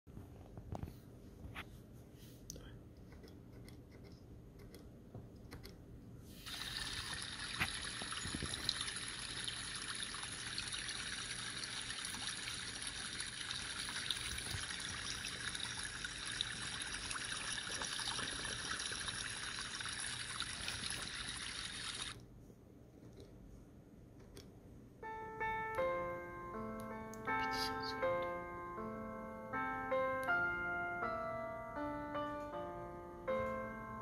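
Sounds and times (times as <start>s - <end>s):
trickling water from small loudspeaker: 6.5s - 22.2s.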